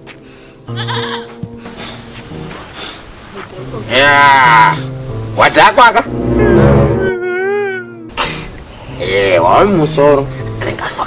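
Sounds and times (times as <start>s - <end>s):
man wailing: 3.9s - 4.9s, 6.3s - 8.1s
breathy sob: 6.6s - 8.5s.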